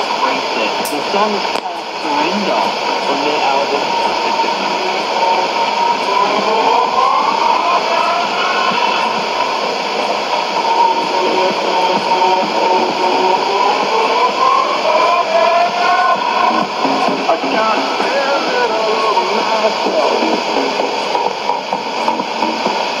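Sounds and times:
electronic music over radio: 0:00.0 - 0:23.0
radio static hiss: 0:00.0 - 0:23.0.

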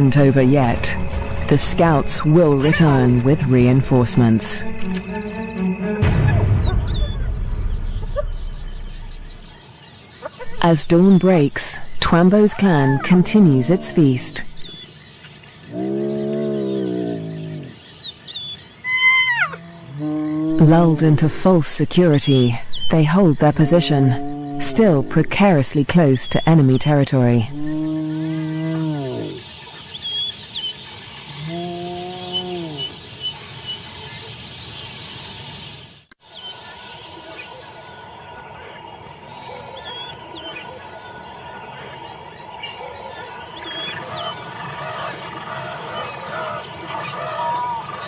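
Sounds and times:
birds chirping: 0:00.0 - 0:48.0
insects chorus: 0:00.0 - 0:48.0
hyena moaning call: 0:15.7 - 0:17.8, 0:18.9 - 0:20.6, 0:23.9 - 0:24.8, 0:27.5 - 0:29.4, 0:31.4 - 0:32.9
hyena whooping call: 0:18.8 - 0:20.3.

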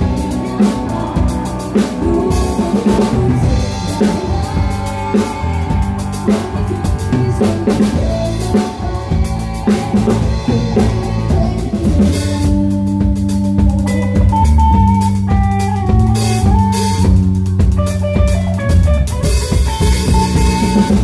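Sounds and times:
bass guitar: 0:00.0 - 0:21.0
electric guitar: 0:00.0 - 0:21.0
live band playing: 0:00.0 - 0:21.0.

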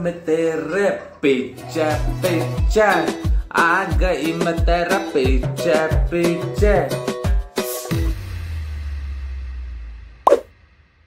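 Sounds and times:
pop sound effect falling in pitch: 0:10.3 - 0:10.5.

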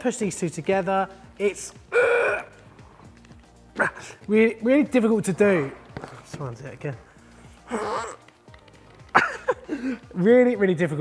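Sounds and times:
man's strained vocal noises: 0:01.9 - 0:02.6, 0:07.7 - 0:08.2.

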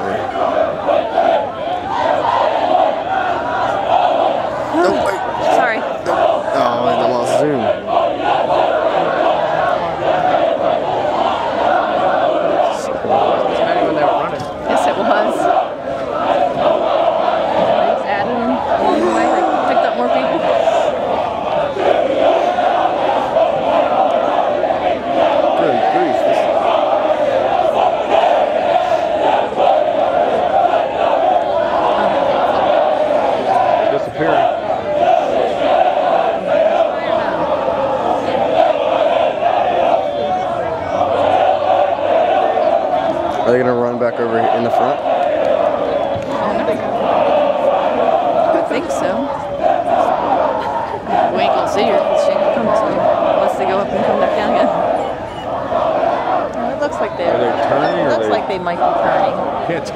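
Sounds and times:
crowd chanting running cadence: 0:00.0 - 0:59.9.

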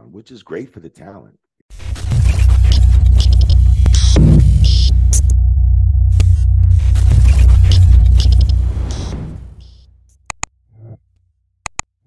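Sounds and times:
deep throbbing bass drone: 0:01.7 - 0:09.8
glitchy static stutters: 0:01.7 - 0:09.8
falling electronic sweep: 0:01.8 - 0:09.8.

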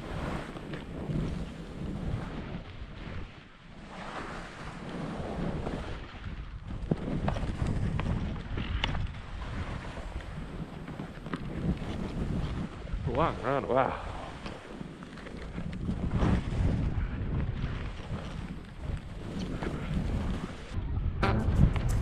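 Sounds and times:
wind buffeting microphone: 0:00.0 - 0:22.0
sharp clicks from skis: 0:06.9 - 0:10.3, 0:14.3 - 0:16.4, 0:17.8 - 0:20.7
skis scraping over snow: 0:17.8 - 0:20.7.

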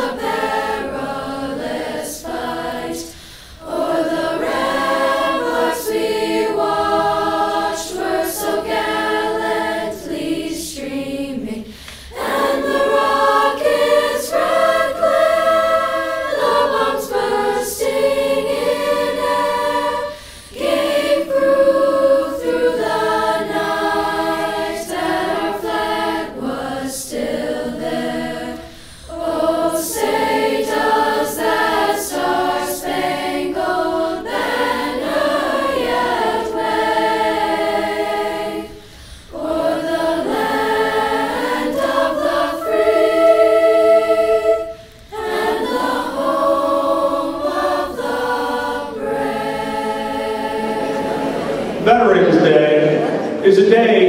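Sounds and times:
choir singing: 0:00.0 - 0:54.0.

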